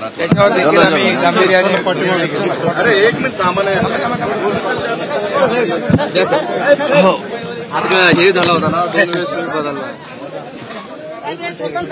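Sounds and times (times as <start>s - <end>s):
voices chattering: 0.0s - 11.9s.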